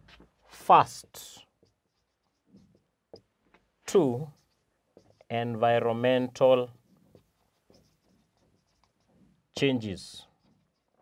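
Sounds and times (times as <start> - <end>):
marker pen scratching on whiteboard: 0.0 - 11.0.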